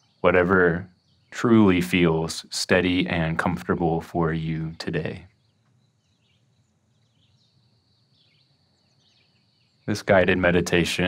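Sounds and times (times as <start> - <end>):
bird chirps: 0.0 - 11.0
man speaking: 0.2 - 5.2, 9.9 - 11.0.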